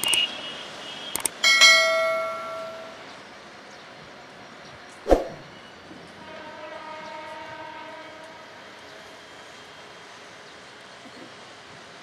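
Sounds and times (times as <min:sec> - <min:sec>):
notification bell ding: 0:01.6 - 0:03.0.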